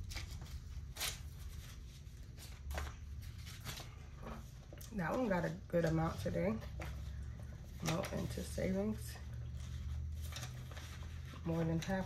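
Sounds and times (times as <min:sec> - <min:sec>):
paper money and plastic rustling: 0:00.0 - 0:12.0.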